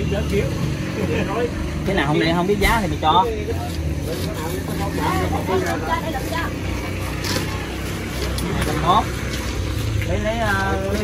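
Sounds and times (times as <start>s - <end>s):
low traffic rumble: 0.0s - 11.0s
people talking indistinctly: 0.0s - 11.0s.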